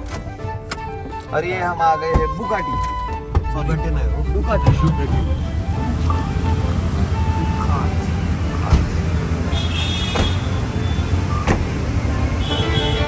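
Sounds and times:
road traffic rumble: 0.0 - 13.0.

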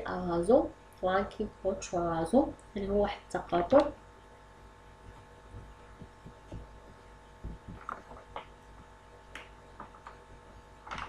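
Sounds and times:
faint electrical hum: 0.0 - 11.0
soft low thumps: 4.6 - 9.0.

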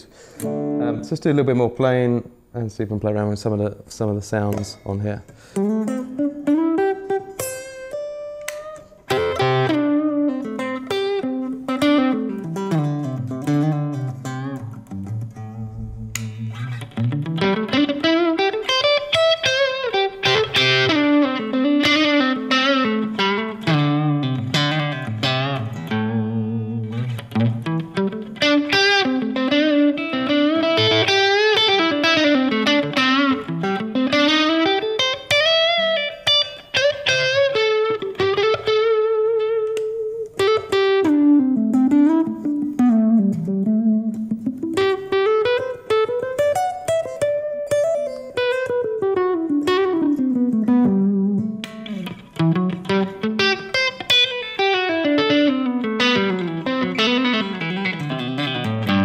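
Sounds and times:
electric guitar lead: 0.0 - 1.4, 5.3 - 59.0.

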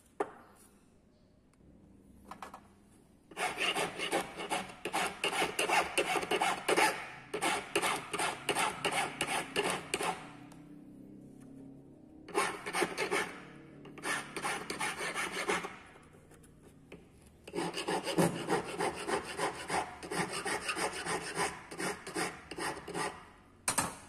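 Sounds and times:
file rasping on metal ring: 3.3 - 10.2, 12.3 - 15.8, 17.4 - 23.2.

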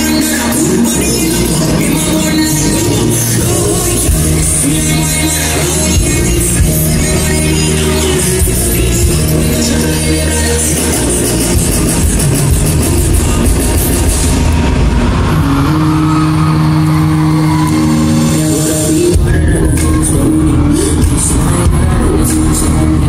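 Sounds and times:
heavy bass beat: 0.0 - 23.0.

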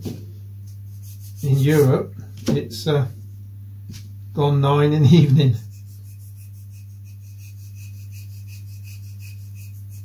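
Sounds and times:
steady low hum: 0.0 - 10.0
wood rasping on sanding block: 0.9 - 1.9, 5.5 - 10.0.

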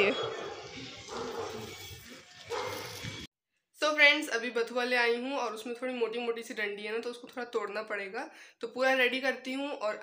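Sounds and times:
woman speaking: 0.0 - 0.2, 3.8 - 10.0.

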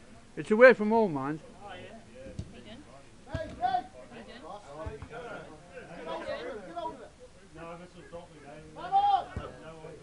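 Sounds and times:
dull thud: 3.3 - 3.7
footballers shouting: 3.3 - 4.0, 8.6 - 10.0.

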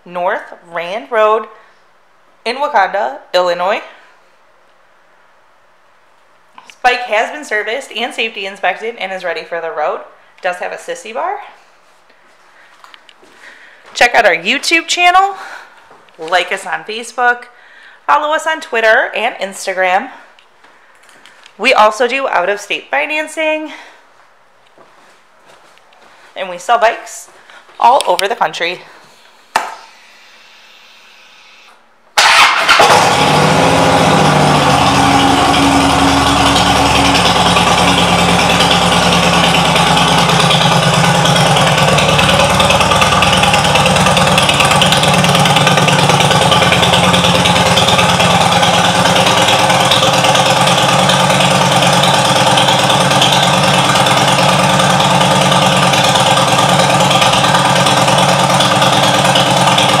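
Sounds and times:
motorcycle engine starting and idling: 32.2 - 60.0.

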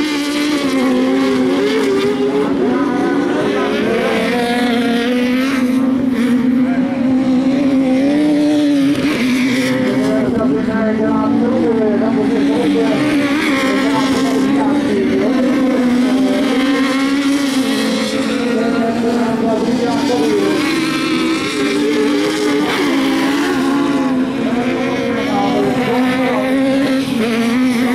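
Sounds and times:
racing buggy engines revving: 0.0 - 27.9.

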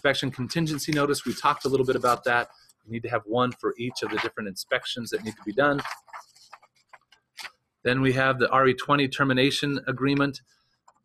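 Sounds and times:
man speaking: 0.0 - 6.0, 7.9 - 10.4
paper rustling: 0.6 - 2.7, 3.4 - 7.5.

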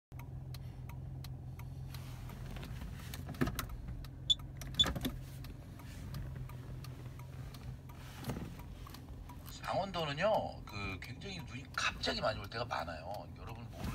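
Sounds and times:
hazard flasher relay ticking: 0.1 - 8.0, 8.6 - 13.7
car engine idling hum: 0.2 - 13.9.

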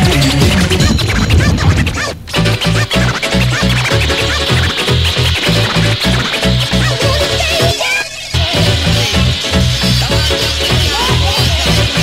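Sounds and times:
fast pulsing bass line: 0.0 - 7.8, 8.4 - 12.0
rave dance music: 0.0 - 12.0
record scratching pitch glides: 0.0 - 12.0.

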